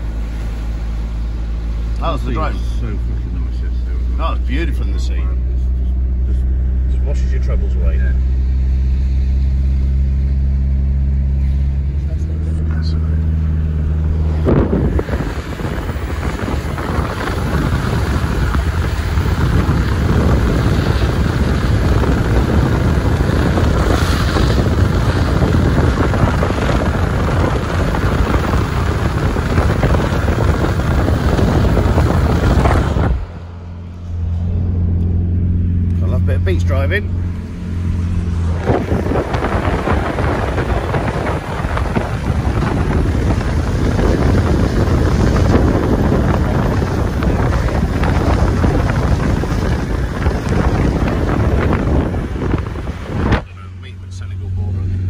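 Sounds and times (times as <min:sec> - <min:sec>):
car engine hum: 0:00.0 - 0:55.0
wind rushing over microphone: 0:12.3 - 0:53.8.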